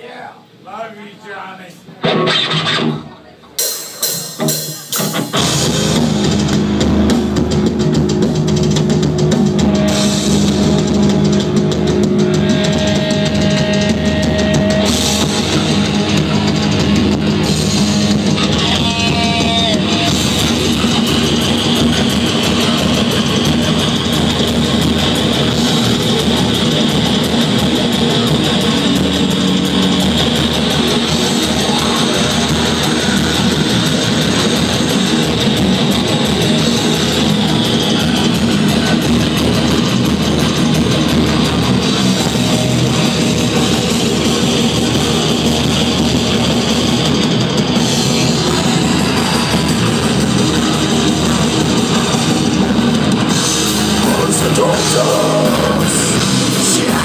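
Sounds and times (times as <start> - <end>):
distorted electric guitars: 0.0 - 57.0
heavy metal band playing: 0.0 - 57.0
drum kit: 1.8 - 57.0.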